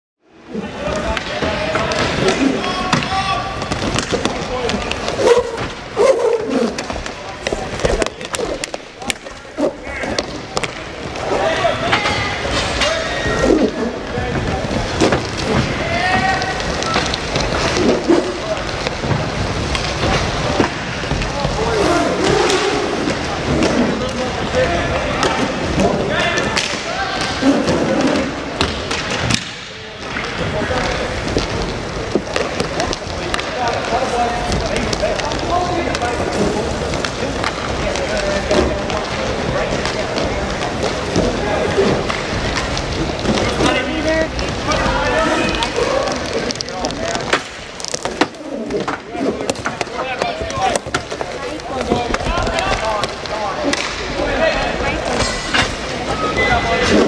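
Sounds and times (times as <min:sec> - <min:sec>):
skate wheels rolling and scraping: 0:00.4 - 0:57.0
sticks and puck clacking: 0:00.8 - 0:57.0.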